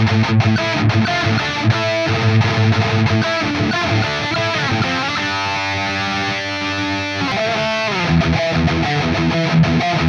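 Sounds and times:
distorted electric guitar riff: 0.0 - 10.0.

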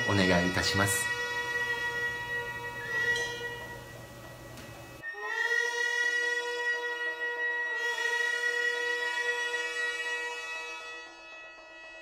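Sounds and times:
wind instrument holding long notes: 0.0 - 12.0.

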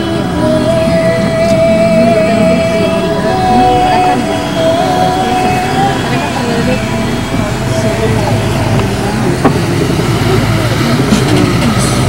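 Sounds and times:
indistinct voices: 0.0 - 12.0
road noise: 0.0 - 12.0
vehicle engine running: 0.0 - 12.0.

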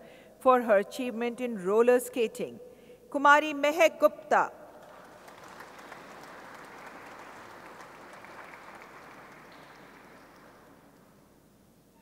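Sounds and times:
audience applauding: 4.8 - 11.2.

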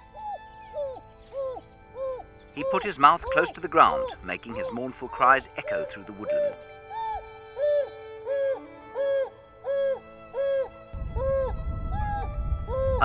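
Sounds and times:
background music with held notes: 0.0 - 13.0
wild dog hooting call: 1.4 - 5.3
low rumble: 10.9 - 13.0.

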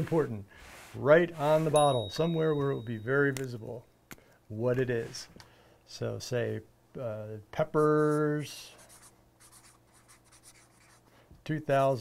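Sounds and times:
marker writing on plastic: 8.8 - 11.1.

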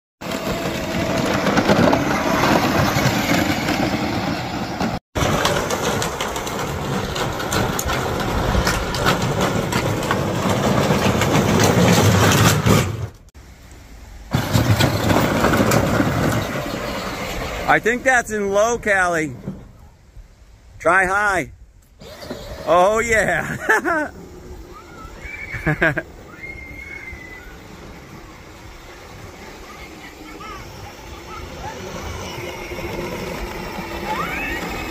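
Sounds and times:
plastic wheels rattling: 0.2 - 13.2, 14.4 - 17.9, 22.0 - 34.9
toy car electric motor whirring: 22.0 - 34.9
girl squealing with laughter: 23.4 - 27.7.

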